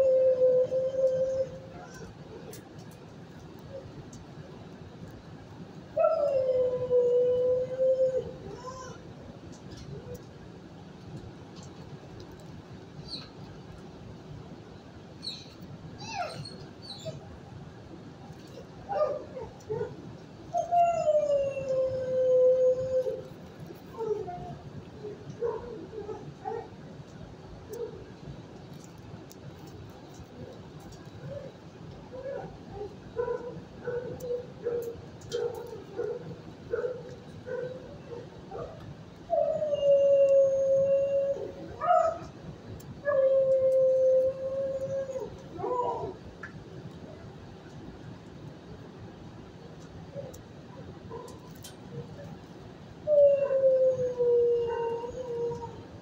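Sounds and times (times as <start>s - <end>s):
dog whining: 16.0s - 17.2s
dog howling: 43.0s - 46.2s, 53.1s - 55.8s.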